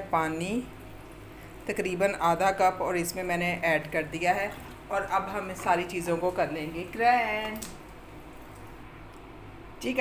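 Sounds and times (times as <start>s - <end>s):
woman speaking: 0.0s - 0.7s, 1.7s - 7.7s, 9.8s - 10.0s.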